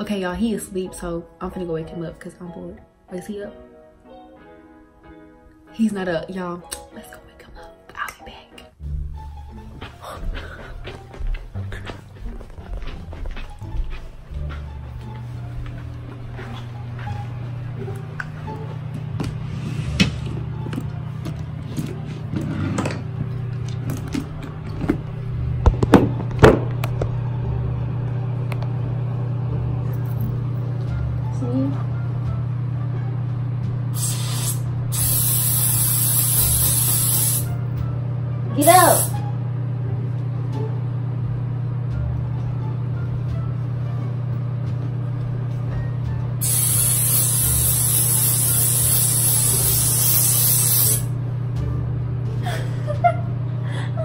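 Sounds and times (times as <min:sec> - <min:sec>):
aerosol can spraying: 0:34.0 - 0:37.6, 0:38.6 - 0:39.2, 0:46.4 - 0:51.1.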